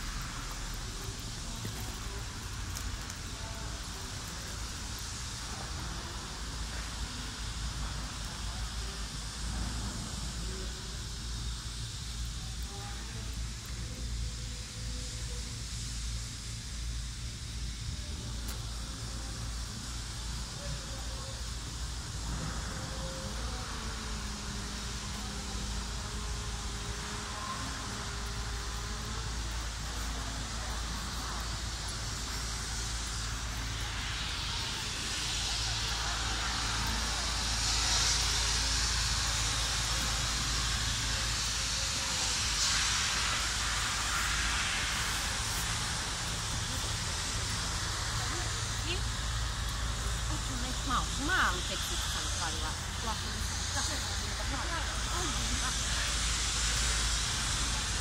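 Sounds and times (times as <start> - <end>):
faint distant voices: 0.0 - 58.0
hiss: 0.0 - 58.0.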